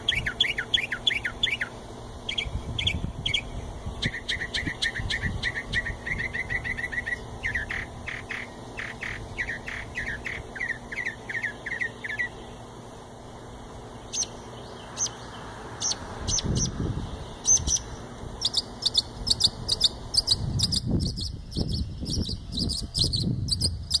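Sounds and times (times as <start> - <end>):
songbird singing: 0.0 - 24.0.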